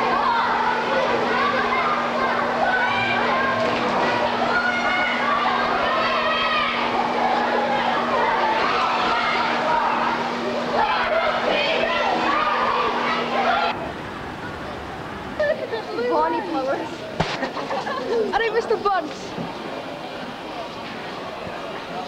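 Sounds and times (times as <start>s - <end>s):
children chattering and calling out: 0.0s - 22.0s
steady low hum: 0.0s - 22.0s.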